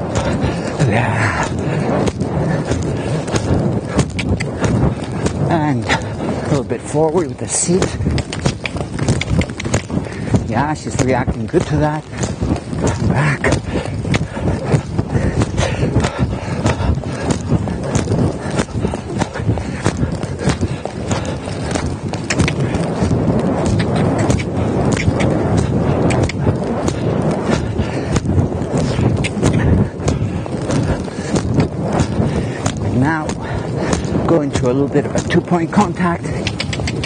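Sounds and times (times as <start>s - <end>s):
hoofbeats on soft footing: 0.0s - 37.0s.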